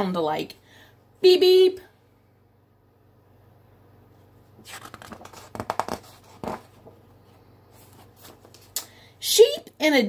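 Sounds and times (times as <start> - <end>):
paper page rustling: 4.6 - 7.0, 7.7 - 8.8.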